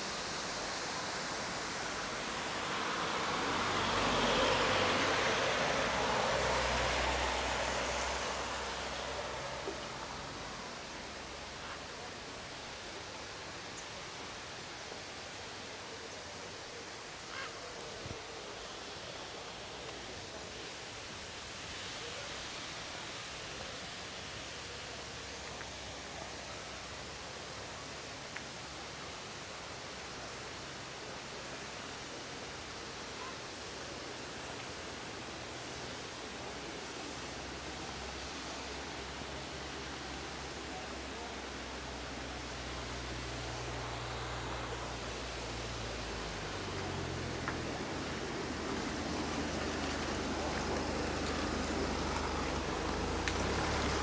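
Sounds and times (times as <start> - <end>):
car passing on wet road: 0.0 - 54.0.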